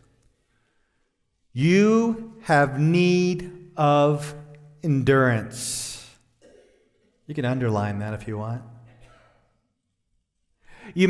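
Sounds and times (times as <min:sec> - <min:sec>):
man speaking: 0:01.5 - 0:06.2, 0:07.3 - 0:08.8
man breathing in: 0:10.6 - 0:11.0.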